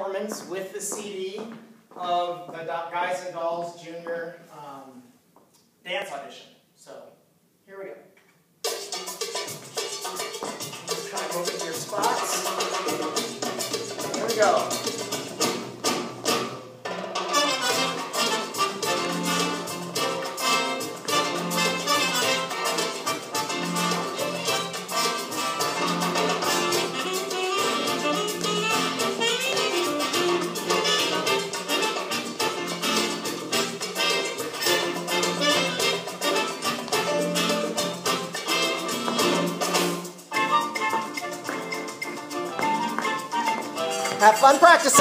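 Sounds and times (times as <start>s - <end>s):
upbeat dance music with brass: 8.7s - 45.0s.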